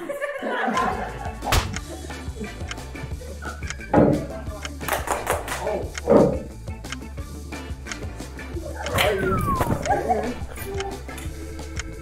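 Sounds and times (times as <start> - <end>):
background music: 0.0 - 12.0
people yelping and squealing: 8.6 - 11.1.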